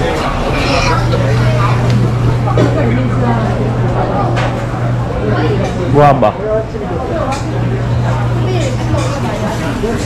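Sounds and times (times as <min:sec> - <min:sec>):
steady low hum: 0:00.0 - 0:10.0
voices talking: 0:00.0 - 0:10.0.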